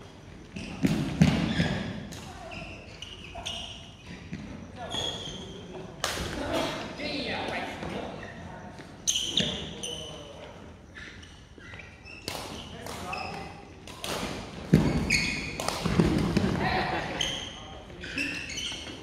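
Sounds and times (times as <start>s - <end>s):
rackets hitting shuttlecock: 12.2s - 16.6s.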